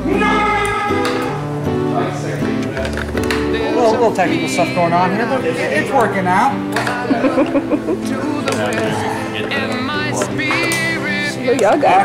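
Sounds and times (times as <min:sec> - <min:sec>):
background music: 0:00.0 - 0:12.0
man laughing: 0:07.0 - 0:09.1.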